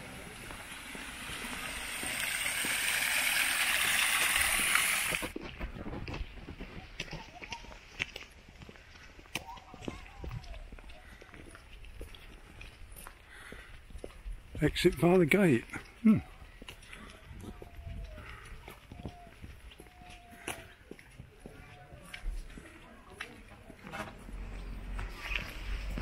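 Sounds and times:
footsteps on paved path: 0.0 - 2.9, 3.6 - 26.0
waterfall splashing: 0.0 - 5.3
faint outdoor background: 0.0 - 26.0.

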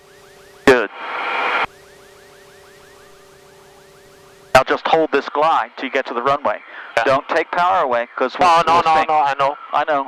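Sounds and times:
low electronic hum: 0.0 - 10.0.

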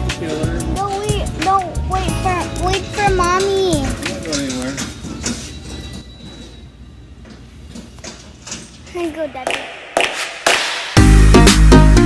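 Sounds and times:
child's voice: 0.8 - 4.4, 8.9 - 9.6
shopping cart rolling and rattling: 4.0 - 6.6.

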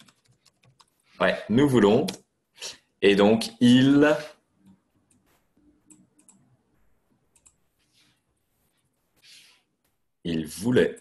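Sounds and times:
keyboard and mouse clicks: 0.0 - 1.0, 4.6 - 6.5, 7.3 - 7.6.

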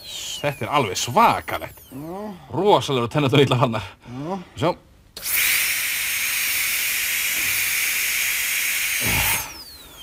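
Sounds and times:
dental drill whining: 0.0 - 2.3, 5.2 - 10.0.

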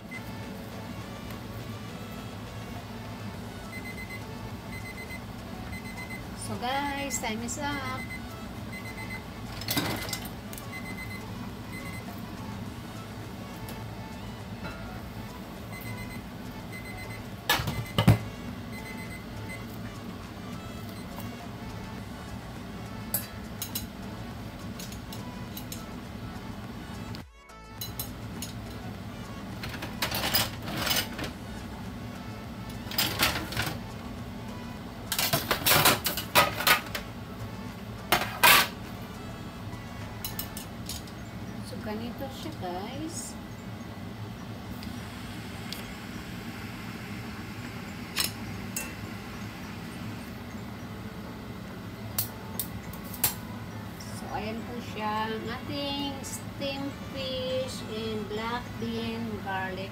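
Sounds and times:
music: 0.0 - 45.4, 48.2 - 59.9
steady low hum: 0.0 - 59.9
metal tongs clinking and scraping: 27.8 - 28.7, 38.1 - 38.8, 40.2 - 41.1
metal lid clattering: 38.1 - 38.8.

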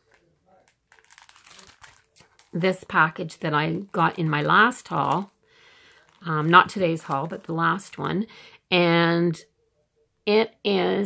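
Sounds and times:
plastic packaging crinkling: 0.0 - 8.1.

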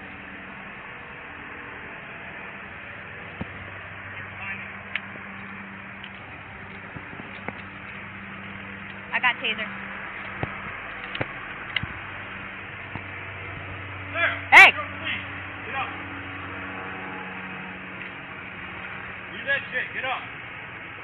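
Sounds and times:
steady low hum: 0.0 - 21.0
people shouting: 14.1 - 15.2.

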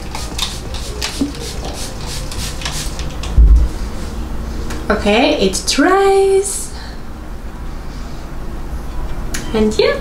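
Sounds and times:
short low thump: 3.4 - 3.8.

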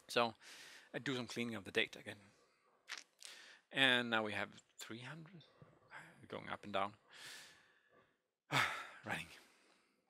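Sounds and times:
man sighing: 8.5 - 9.0.

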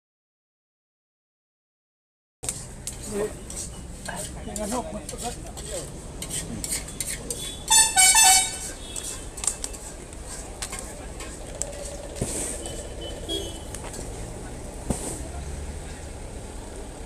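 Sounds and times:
low street hum: 2.4 - 17.0
vehicle horn honking: 7.4 - 9.2, 12.6 - 13.8.

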